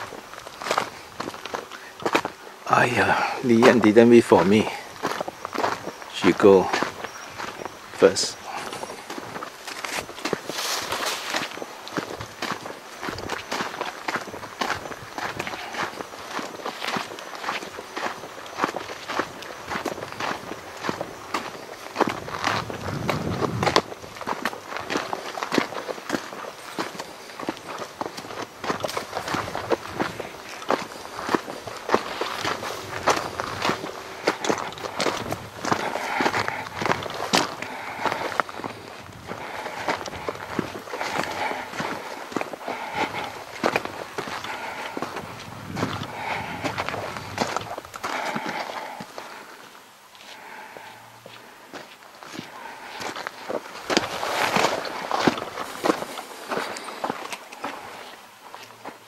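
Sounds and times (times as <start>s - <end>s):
footsteps crunching on sandy dirt: 0.0s - 59.0s.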